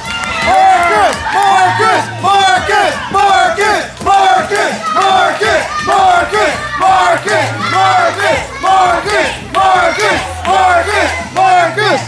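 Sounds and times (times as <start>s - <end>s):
steady bass line: 0.0s - 12.0s
shouted vocal hook: 0.3s - 12.0s.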